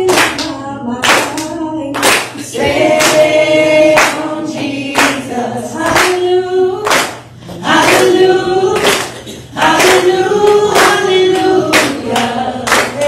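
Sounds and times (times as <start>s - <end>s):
hand clapping: 0.0s - 4.3s, 4.9s - 5.2s, 5.8s - 6.2s, 6.8s - 13.0s
congregation singing: 0.0s - 13.0s.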